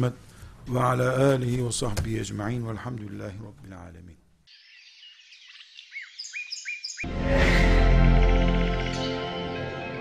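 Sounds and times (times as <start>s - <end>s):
faint birds chirping: 2.1s - 7.1s.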